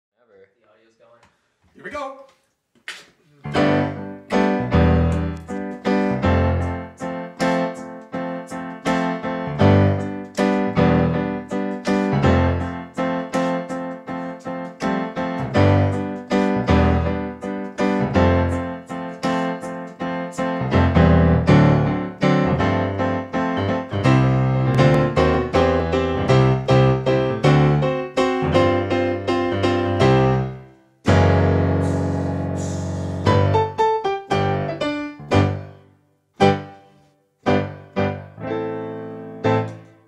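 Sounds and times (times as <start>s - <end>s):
funk piano playing: 3.4s - 40.0s.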